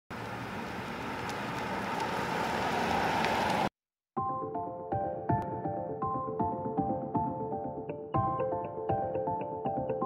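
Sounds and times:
tyres on road: 0:00.1 - 0:03.7.

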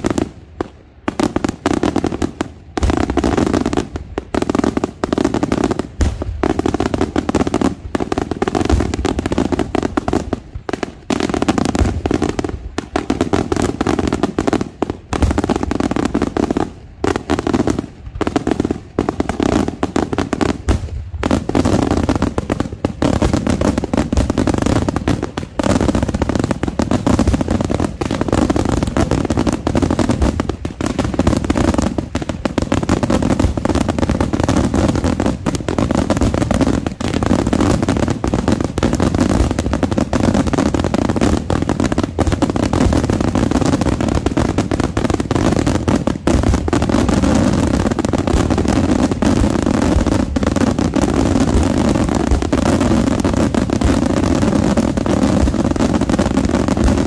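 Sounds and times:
fireworks bangs and crackle: 0:00.0 - 0:57.0.

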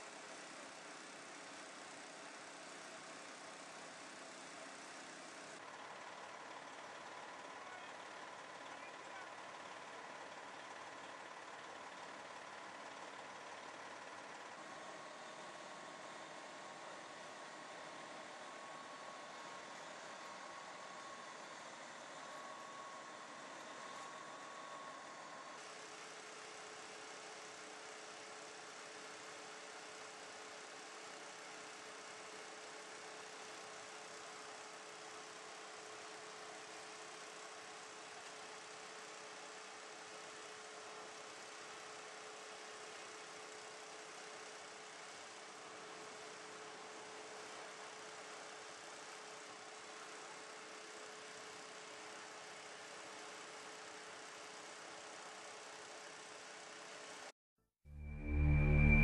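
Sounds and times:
fire engine running: 0:00.0 - 0:49.0, 0:57.9 - 0:59.0.

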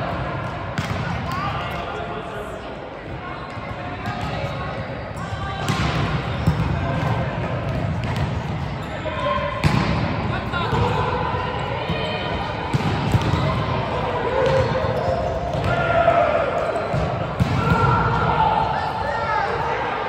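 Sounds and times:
volleyballs slapping and bouncing: 0:00.0 - 0:02.0, 0:05.6 - 0:08.9, 0:09.6 - 0:11.2, 0:11.8 - 0:15.9, 0:16.6 - 0:18.4.

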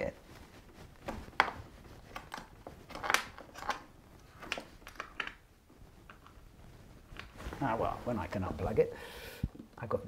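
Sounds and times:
cables unplugging clicks and scrapes: 0:01.0 - 0:05.4.

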